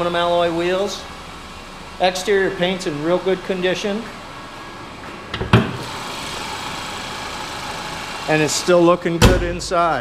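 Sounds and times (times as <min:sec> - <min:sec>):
car engine idling: 0:00.0 - 0:10.0
car hood thump: 0:05.3 - 0:05.8, 0:09.2 - 0:09.6.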